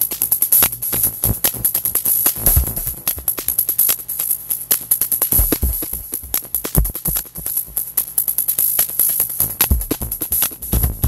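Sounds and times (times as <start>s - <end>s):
electronic drum-machine music: 0.0s - 11.0s.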